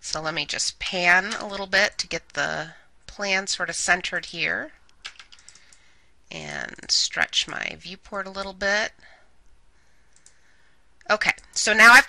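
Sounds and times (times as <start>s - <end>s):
computer mouse clicks: 4.9s - 5.9s, 10.1s - 10.4s.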